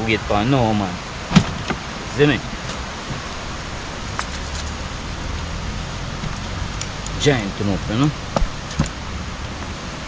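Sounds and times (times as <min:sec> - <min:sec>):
river water rushing: 0:00.0 - 0:10.0
low rumble: 0:01.8 - 0:10.0.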